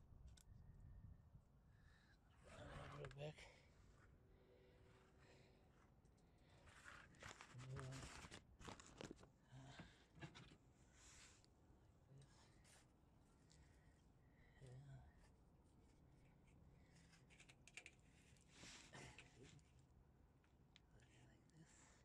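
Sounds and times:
clicks and rustles of plastic hoses: 0:06.1 - 0:10.7, 0:16.2 - 0:19.9.

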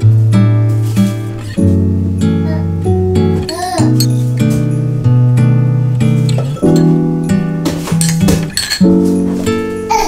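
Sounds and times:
acoustic guitar music: 0:00.0 - 0:10.0
metal spoon clinking ceramic cup: 0:03.4 - 0:04.3, 0:08.0 - 0:08.9.

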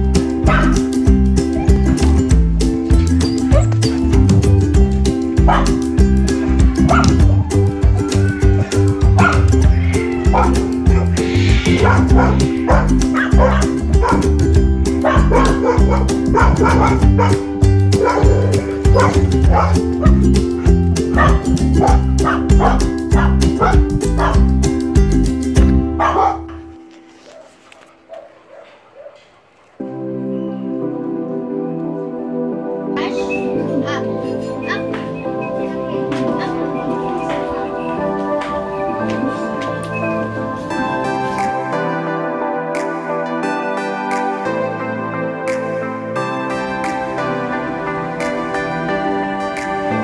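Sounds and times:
background music with beat: 0:00.0 - 0:27.3, 0:33.4 - 0:50.0
dogs barking: 0:00.4 - 0:00.9, 0:05.4 - 0:05.8, 0:06.7 - 0:24.5, 0:25.8 - 0:29.4, 0:33.0 - 0:35.5.

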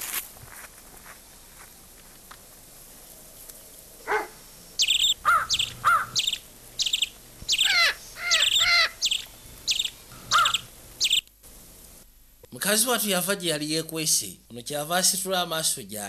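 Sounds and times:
birds chirping: 0:04.0 - 0:11.3.

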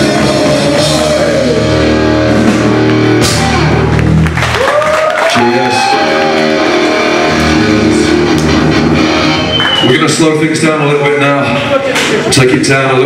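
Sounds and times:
distorted electric guitar: 0:00.0 - 0:04.5, 0:05.4 - 0:09.8
drums: 0:00.0 - 0:13.0.

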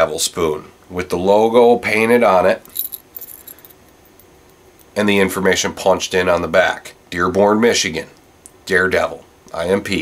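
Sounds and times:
light metallic clinks: 0:02.6 - 0:05.0.

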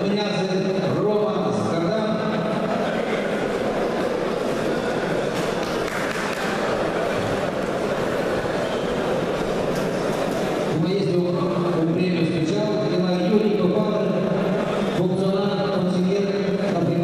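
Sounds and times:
audience applauding: 0:04.8 - 0:08.9.

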